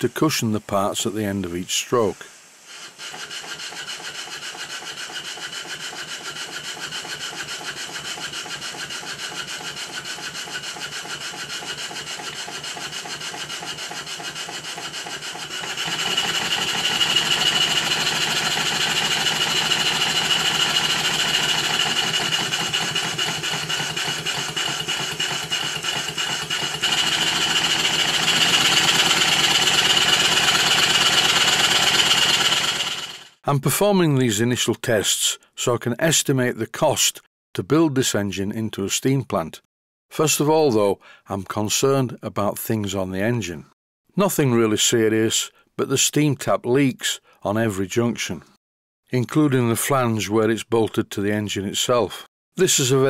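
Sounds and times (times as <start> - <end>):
steady air hiss: 0.0 - 5.7
steam engine exhaust puffs: 0.0 - 33.4.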